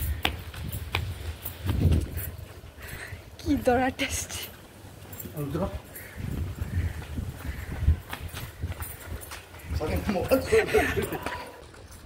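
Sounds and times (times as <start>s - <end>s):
footsteps running on concrete: 0.0s - 3.0s, 5.7s - 12.0s.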